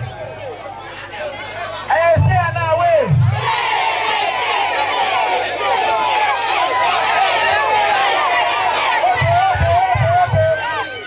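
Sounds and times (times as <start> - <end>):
crowd chattering: 0.0 - 11.0
crowd shouting and cheering: 0.0 - 11.0
man calling over a microphone: 1.9 - 3.2, 9.2 - 11.0.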